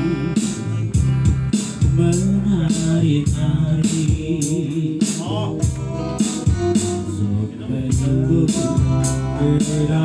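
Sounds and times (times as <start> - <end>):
man singing into microphone: 0.0 - 1.1, 1.8 - 10.0
acoustic guitar: 0.0 - 10.0
steady beat: 0.0 - 10.0.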